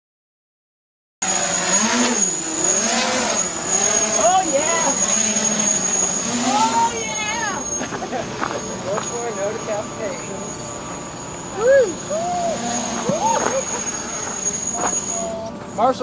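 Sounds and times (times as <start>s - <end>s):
quadcopter motors whining: 1.2s - 16.0s.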